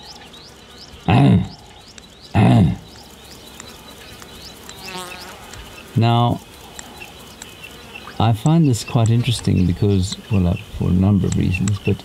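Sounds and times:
insects chirping: 0:00.0 - 0:12.0
steady background hiss: 0:00.0 - 0:12.0.

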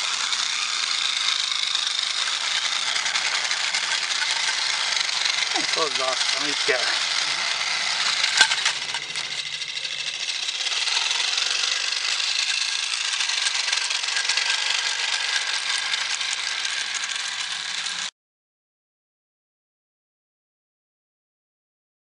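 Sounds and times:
light metallic rattle: 0:00.0 - 0:18.1.

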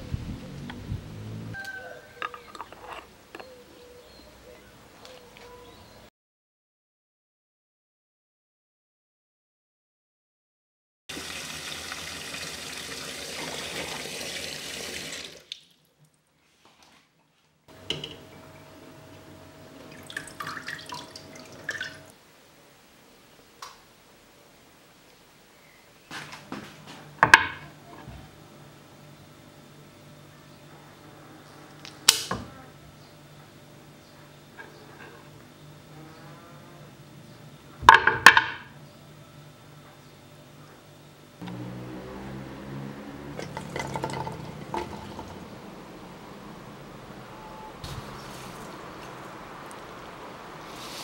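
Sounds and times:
faint steady hum: 0:17.7 - 0:51.0.

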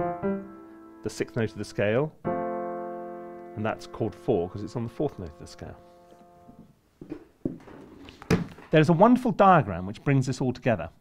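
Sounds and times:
piano chord: 0:00.0 - 0:06.6.

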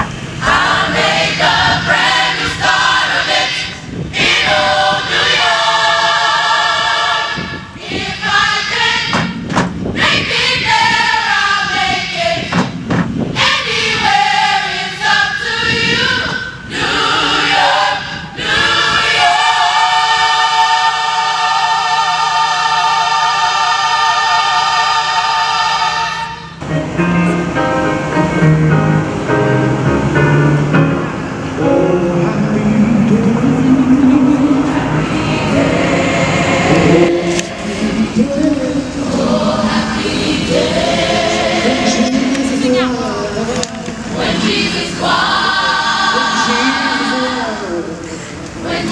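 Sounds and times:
gospel choir singing: 0:00.4 - 0:26.6, 0:31.6 - 0:48.9.

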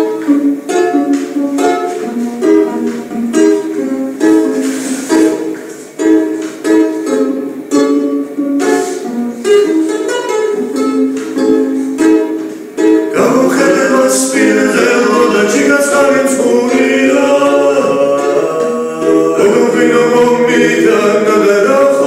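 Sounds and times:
long-necked lute strummed: 0:00.0 - 0:22.0.

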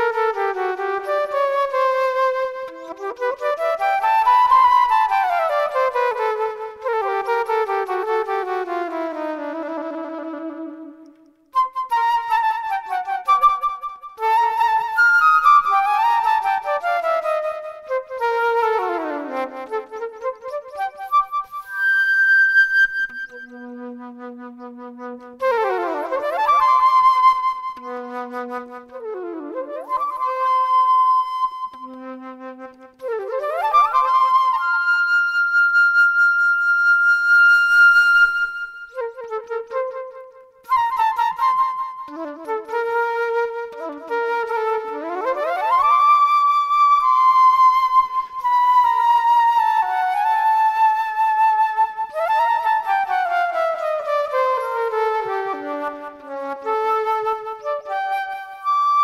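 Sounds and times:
flute improvisation: 0:00.0 - 0:59.0.

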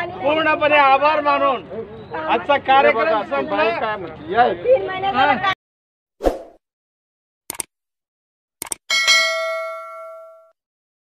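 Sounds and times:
notification bell ding: 0:08.9 - 0:10.6.

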